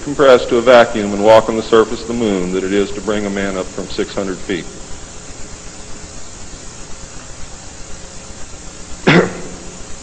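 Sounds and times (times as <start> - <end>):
recording hiss: 0.0 - 10.0.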